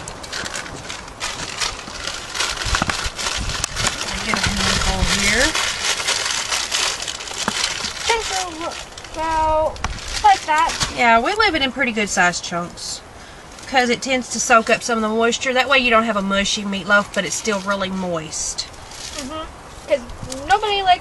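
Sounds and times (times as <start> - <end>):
crackers being crushed: 0.0 - 11.0.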